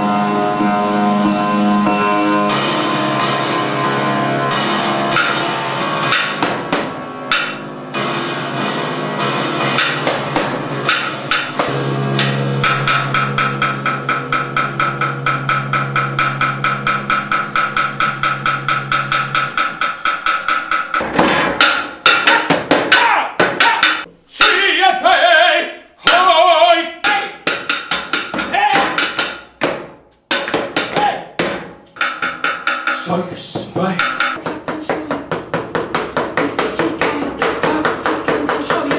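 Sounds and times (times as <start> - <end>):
grand piano playing: 0.0 - 22.4
person singing: 22.9 - 27.4, 33.0 - 38.9.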